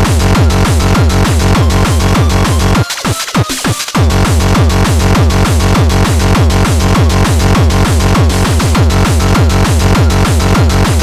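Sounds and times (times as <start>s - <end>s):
fast electronic dance music: 0.0s - 11.0s.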